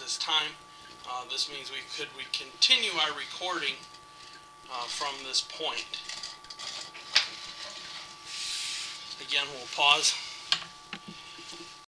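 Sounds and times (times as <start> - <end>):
high-pitched electrical whine: 0.0 - 11.9.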